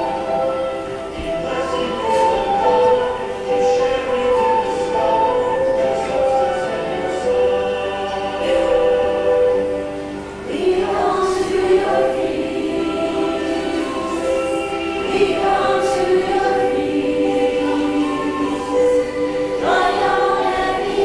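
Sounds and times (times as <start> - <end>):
choir singing a hymn: 0.0 - 21.0.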